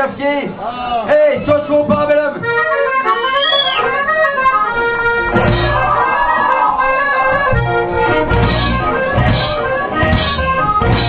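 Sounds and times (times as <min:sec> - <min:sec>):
accordion melody: 0:01.2 - 0:11.0
punk band with drums and guitar: 0:01.4 - 0:11.0.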